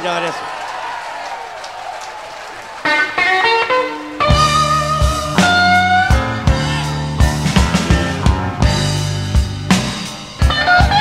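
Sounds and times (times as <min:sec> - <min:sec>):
electric blues guitar solo: 0:02.8 - 0:09.3, 0:10.3 - 0:11.0
band with bass and drums: 0:02.8 - 0:11.0.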